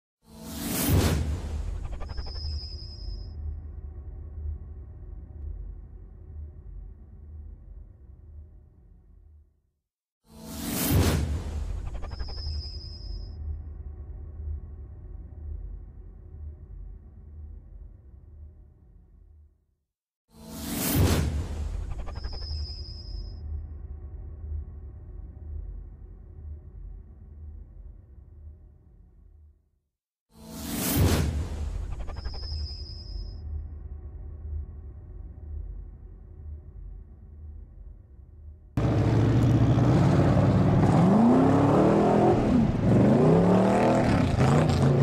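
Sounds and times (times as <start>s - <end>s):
whoosh: 10.4s - 13.0s, 20.5s - 23.0s, 30.5s - 33.1s.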